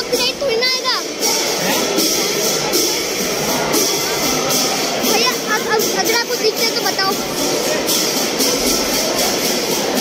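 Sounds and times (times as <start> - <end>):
crowd of voices: 0.0 - 10.0.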